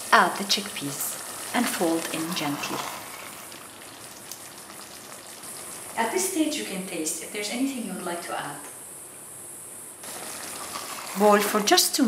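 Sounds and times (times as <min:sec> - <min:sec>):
stew simmering in a pot: 0:00.0 - 0:07.0, 0:10.0 - 0:12.0.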